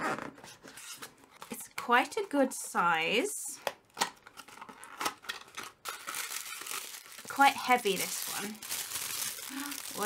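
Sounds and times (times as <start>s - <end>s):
tissue paper crinkling: 5.8s - 10.0s.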